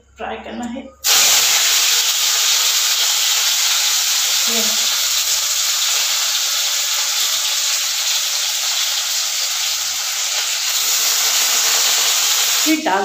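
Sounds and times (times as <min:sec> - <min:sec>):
food sizzling in hot oil: 0:01.0 - 0:13.0.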